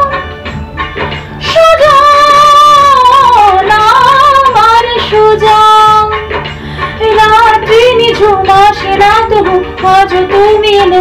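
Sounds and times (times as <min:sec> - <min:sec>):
woman singing solo: 0:01.4 - 0:06.1.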